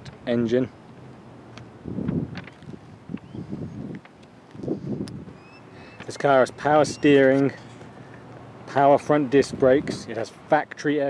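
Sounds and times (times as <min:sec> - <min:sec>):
soft footsteps on asphalt: 0:00.0 - 0:10.9
wind buffeting microphone: 0:01.5 - 0:07.7.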